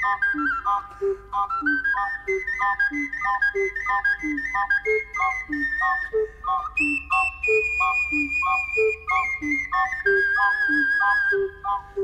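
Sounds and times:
ocarina melody: 0:00.0 - 0:12.0.

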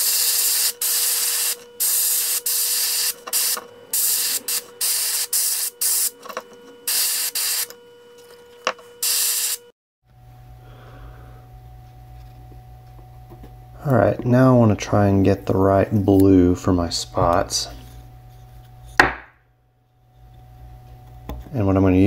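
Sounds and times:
airbrush hissing bursts: 0:00.0 - 0:06.1, 0:06.9 - 0:07.7, 0:09.0 - 0:09.6
low steady hum: 0:10.1 - 0:22.0.

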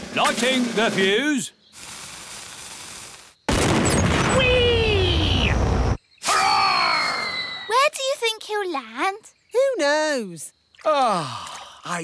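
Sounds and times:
cartoon fuse fizzing: 0:00.4 - 0:03.4
cannon blast with rushing noise: 0:03.5 - 0:04.4.

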